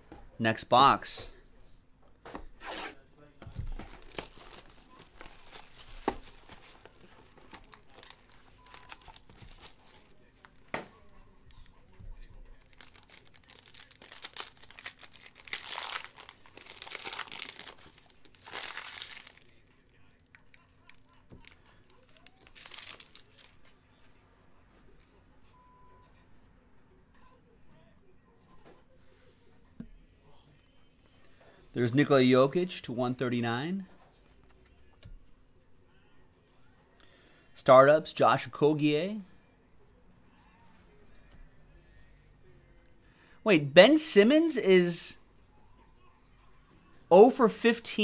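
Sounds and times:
foil packs crinkling: 3.8 - 10.7, 12.6 - 19.6, 20.2 - 23.7
plastic wrapping tearing: 3.9 - 10.6, 12.7 - 19.5, 20.2 - 23.7.

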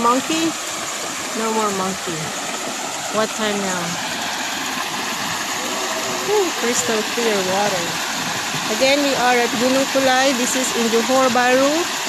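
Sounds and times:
small waterfall pouring: 0.0 - 12.0
river rushing over rocks: 0.6 - 12.0.

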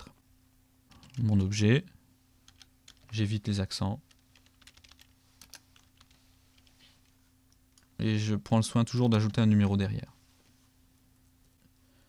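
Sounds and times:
low steady hum: 0.0 - 12.0
computer keyboard keystrokes: 0.9 - 1.2, 2.5 - 3.1, 4.1 - 6.7.

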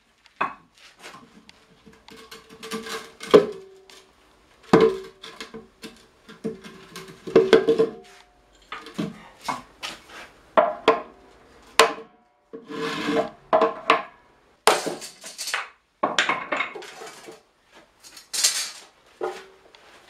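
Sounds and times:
barrel scraping and rubbing: 12.6 - 13.8, 16.8 - 20.0.

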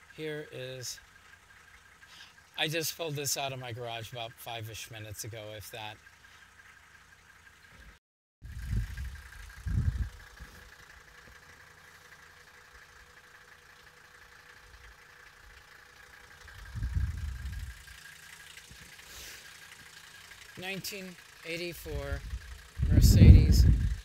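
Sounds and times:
diesel engine idling: 0.0 - 24.0.

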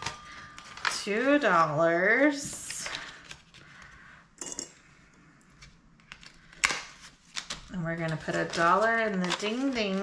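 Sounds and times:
crisp paper crackle: 0.0 - 1.6, 5.6 - 10.0
paper rustling: 5.6 - 10.0.

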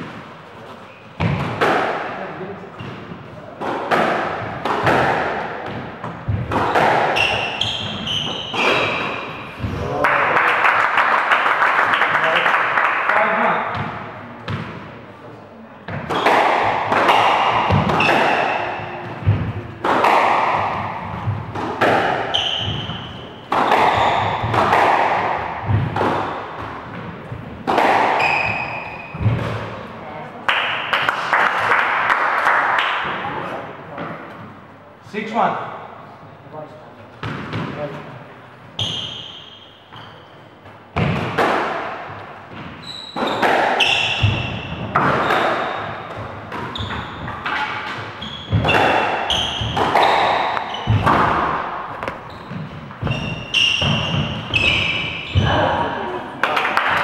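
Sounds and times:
squash ball struck by rackets: 1.2 - 2.2, 2.8 - 9.8, 13.7 - 14.9, 15.9 - 29.8, 37.2 - 37.9, 40.9 - 55.7
shoes squeaking on wooden floor: 7.1 - 9.7, 22.3 - 24.6, 28.2 - 29.4, 42.5 - 51.2, 52.0 - 55.7.

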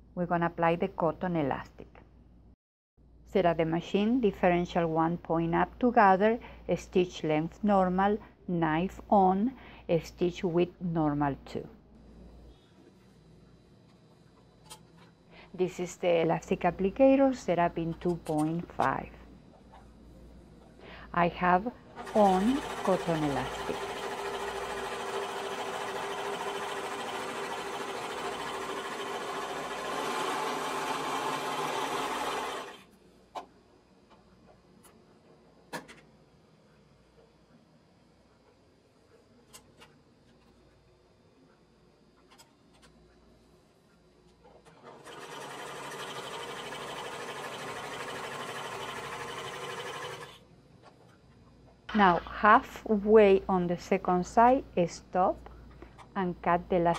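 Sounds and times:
overlock machine stitching: 22.0 - 32.9, 44.7 - 50.4.

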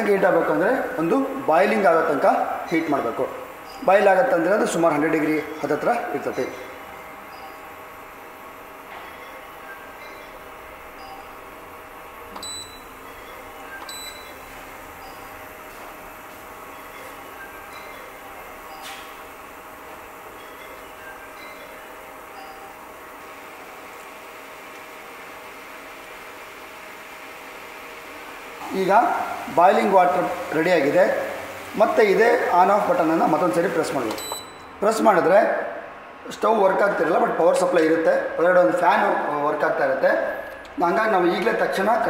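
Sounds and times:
induction cooker humming: 0.0 - 42.0.

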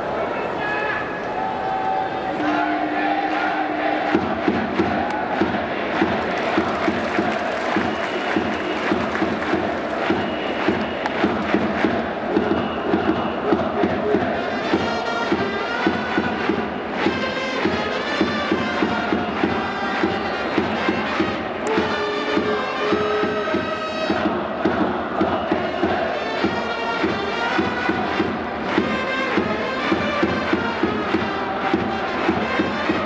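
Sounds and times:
crowd chanting in unison: 0.0 - 33.0
trumpets playing tune: 2.3 - 4.0, 14.4 - 16.4, 17.0 - 24.1
steady drum beat: 4.1 - 33.0.

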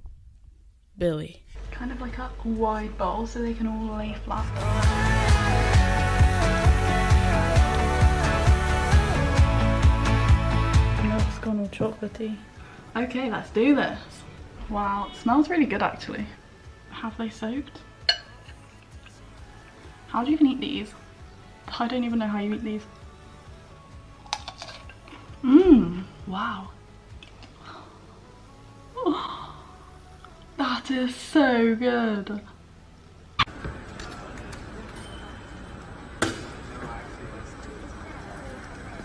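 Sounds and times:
metal spoon clinking ceramic bowl: 18.0 - 18.5
faint indistinct voices: 33.5 - 39.0.

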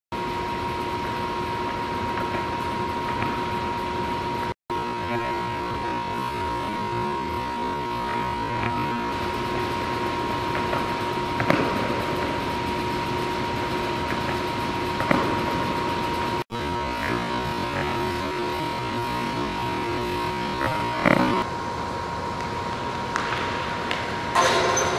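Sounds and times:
steady machinery hum: 0.1 - 24.9.

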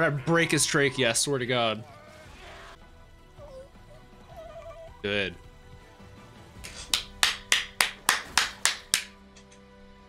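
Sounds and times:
person clapping hands: 6.6 - 9.2.

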